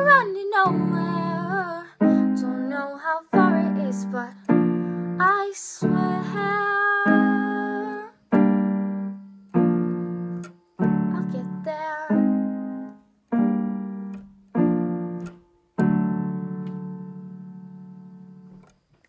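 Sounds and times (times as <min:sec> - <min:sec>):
girl singing: 0:00.0 - 0:08.4, 0:10.9 - 0:12.9.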